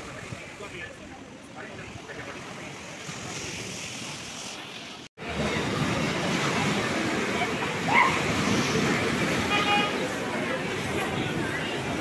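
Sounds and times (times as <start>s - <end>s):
sea waves washing over rocks: 1.8s - 12.0s.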